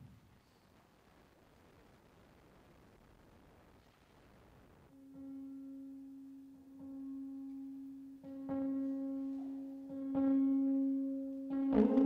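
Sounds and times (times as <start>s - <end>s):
held drone tone: 5.0s - 12.0s
plucked guitar notes: 5.2s - 12.0s.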